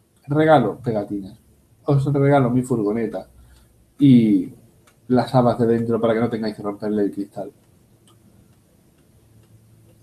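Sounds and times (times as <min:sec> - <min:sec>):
low steady hum: 0:00.0 - 0:10.0
faint ticks: 0:07.6 - 0:10.0.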